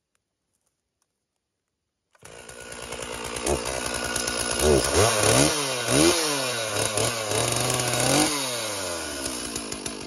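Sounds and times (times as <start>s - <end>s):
chainsaw idling: 2.2s - 10.0s
chainsaw throttle blip: 2.2s - 10.0s.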